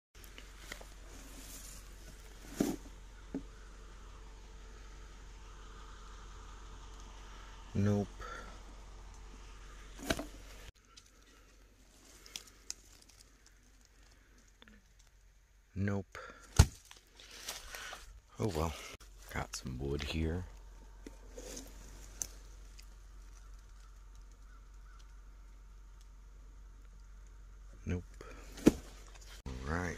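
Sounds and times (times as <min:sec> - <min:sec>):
rustling dry leaves: 0:00.2 - 0:07.6, 0:09.5 - 0:15.3, 0:16.5 - 0:26.0
faint outdoor hiss: 0:00.2 - 0:29.9
wooden board thunk: 0:10.0 - 0:10.3.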